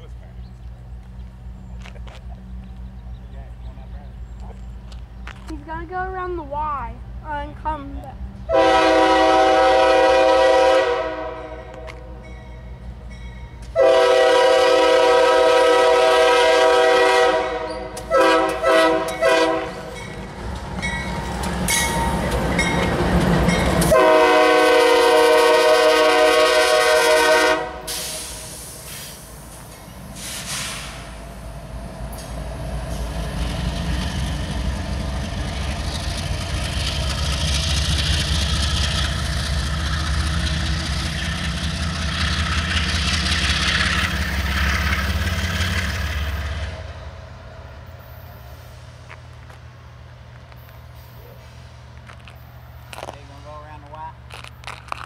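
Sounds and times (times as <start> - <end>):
diesel engines and wheels rumbling: 0.0 - 55.0
locomotive air horn blasts: 8.5 - 11.9, 13.7 - 19.9, 23.9 - 28.4.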